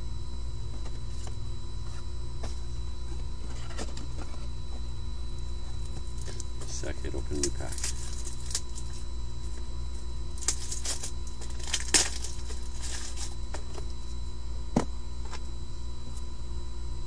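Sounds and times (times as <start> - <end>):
steady electrical hum: 0.0 - 17.0
cards clicking and rustling: 10.4 - 13.8.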